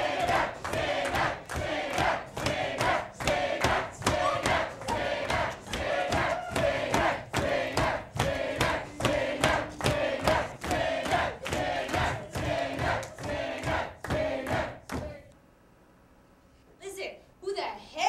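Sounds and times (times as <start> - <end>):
crowd shouting a rhythmic chant: 0.0 - 15.2
sharp beats: 0.0 - 15.2.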